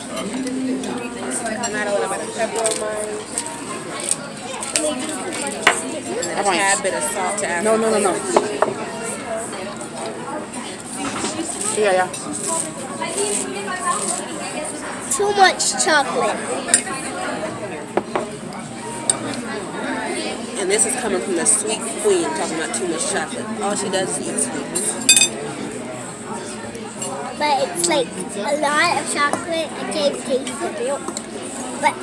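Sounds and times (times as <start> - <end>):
dining room chatter: 0.0 - 32.0
tableware clinking: 24.8 - 25.4
tableware click: 25.0 - 25.4.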